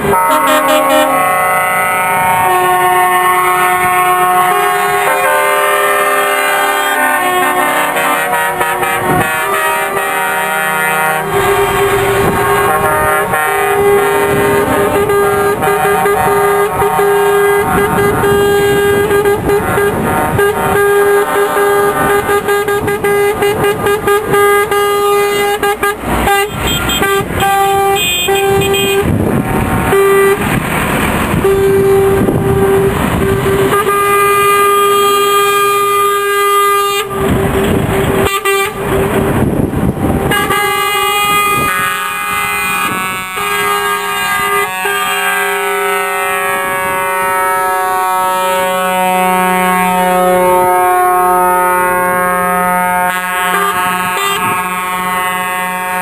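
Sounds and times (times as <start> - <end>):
truck air horns: 0.0 - 56.0
truck engine and tyre noise: 0.0 - 56.0.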